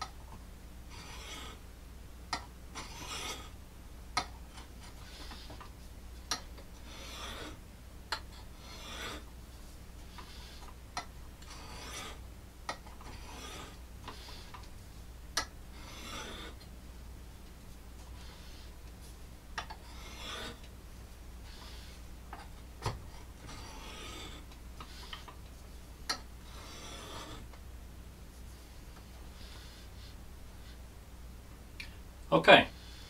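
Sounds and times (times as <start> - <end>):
knife rasping on sharpening stone: 1.0 - 1.6, 2.8 - 3.5, 6.9 - 7.6, 8.6 - 9.2, 11.5 - 12.2, 13.2 - 14.4, 15.8 - 16.6, 19.8 - 20.6, 23.5 - 25.1, 26.5 - 27.4.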